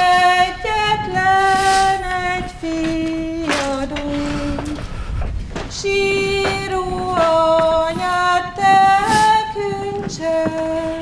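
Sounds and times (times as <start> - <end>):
woman singing unaccompanied: 0.0 - 5.0, 5.6 - 11.0.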